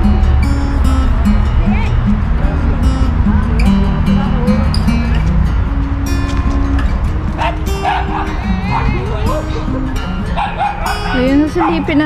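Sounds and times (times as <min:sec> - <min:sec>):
background music: 0:00.0 - 0:12.0
dog barking and whining: 0:07.4 - 0:12.0.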